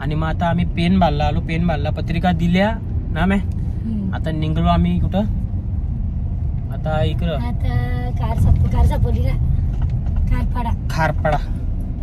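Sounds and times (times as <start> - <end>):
car cabin low rumble: 0.0 - 12.0.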